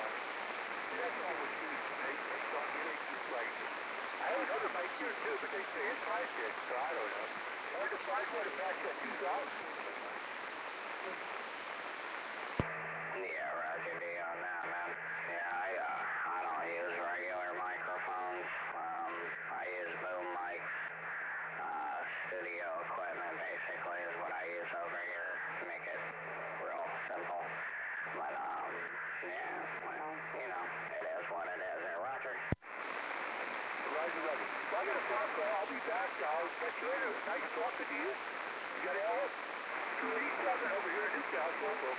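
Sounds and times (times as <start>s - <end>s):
radio band hiss: 0.0s - 41.9s
voice through radio speaker: 13.2s - 32.6s, 33.2s - 41.9s.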